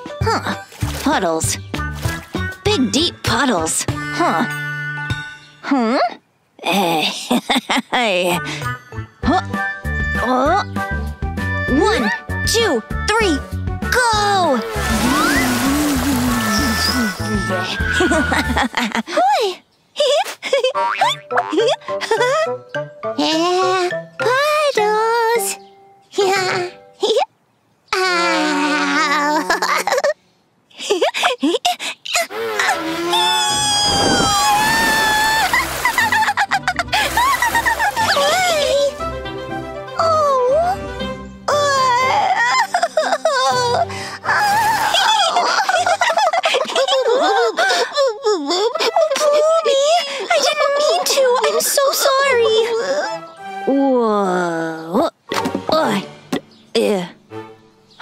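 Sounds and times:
upbeat children's music: 0:00.0 - 0:05.6, 0:08.3 - 0:18.6
cartoon character chattering and giggling: 0:14.0 - 0:22.6, 0:28.3 - 0:30.2, 0:35.3 - 0:39.0, 0:41.5 - 0:53.1.

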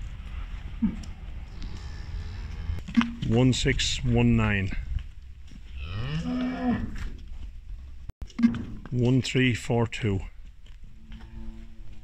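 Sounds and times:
cow mooing: 0:01.5 - 0:02.8, 0:05.8 - 0:07.0.

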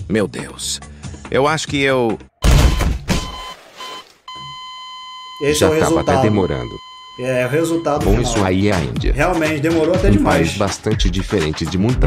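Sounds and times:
high censor bleep: 0:02.6 - 0:08.5.

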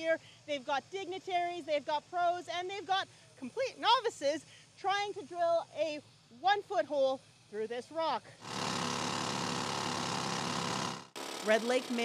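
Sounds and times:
rock drill hammering: 0:08.4 - 0:12.0.

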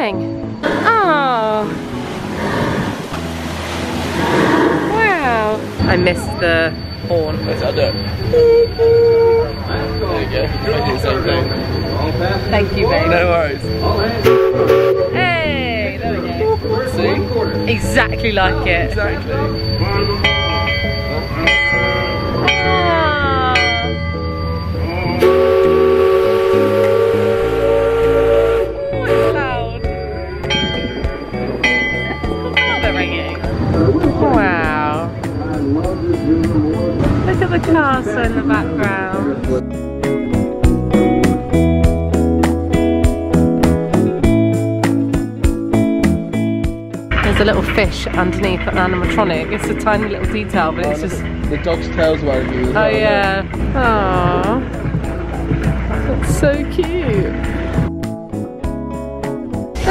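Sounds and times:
music: 0:00.0 - 0:59.9
paddle wheel churning water: 0:00.8 - 0:13.4, 0:47.1 - 0:57.9
steam whistle blast: 0:07.8 - 0:10.0, 0:13.8 - 0:15.2, 0:24.4 - 0:29.8.

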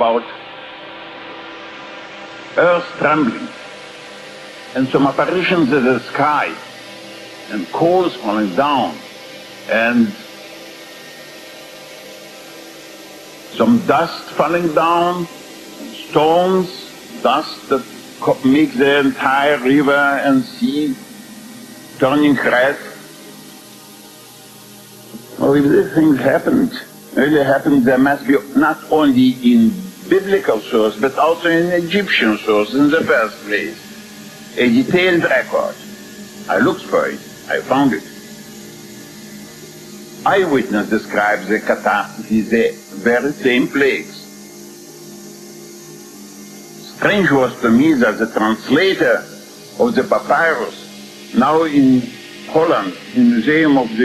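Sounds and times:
people talking: 0:00.0 - 0:00.4, 0:02.6 - 0:03.6, 0:04.8 - 0:06.7, 0:07.5 - 0:09.0, 0:09.7 - 0:10.2, 0:13.6 - 0:21.0, 0:22.0 - 0:23.0, 0:25.2 - 0:33.8, 0:34.6 - 0:35.9, 0:36.5 - 0:38.1, 0:40.3 - 0:44.2, 0:46.8 - 0:54.0
recording hiss: 0:00.0 - 0:54.0.

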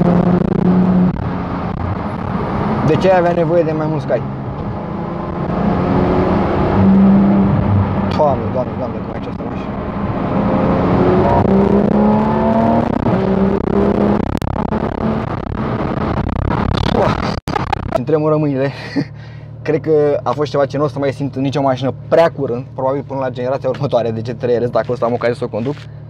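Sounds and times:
car engine revving: 0:00.0 - 0:18.2.

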